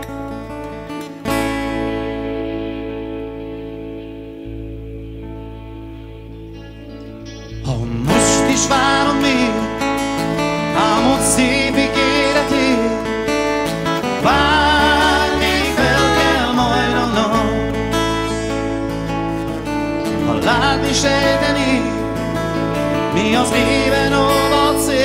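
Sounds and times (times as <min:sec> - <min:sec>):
bass line: 0:00.0 - 0:25.0
strummed acoustic guitar: 0:00.0 - 0:25.0
man singing: 0:07.6 - 0:18.8, 0:20.1 - 0:25.0.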